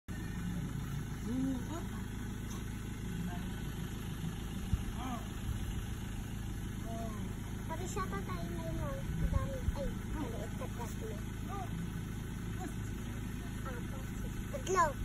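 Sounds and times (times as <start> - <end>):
truck engine idling: 0.1 - 15.0.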